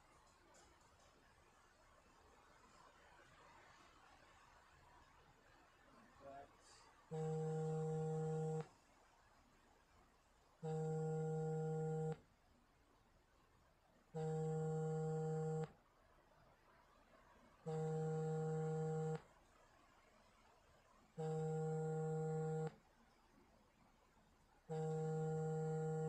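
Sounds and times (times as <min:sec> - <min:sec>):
low electronic buzzing tone: 0:07.1 - 0:08.7, 0:10.6 - 0:12.2, 0:14.2 - 0:15.7, 0:17.7 - 0:19.2, 0:21.2 - 0:22.8, 0:24.7 - 0:26.0.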